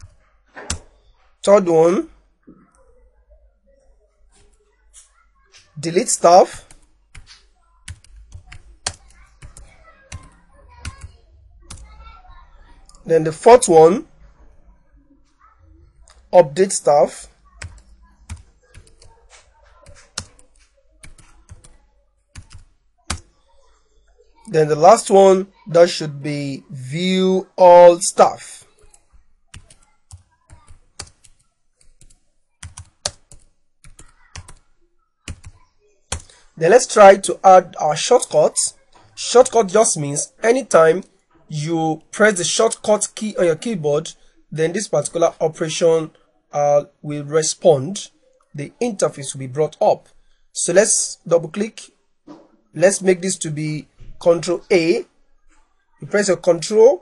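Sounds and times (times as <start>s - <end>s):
typing on computer keyboard: 6.6s - 11.1s, 17.5s - 23.3s, 28.6s - 36.4s.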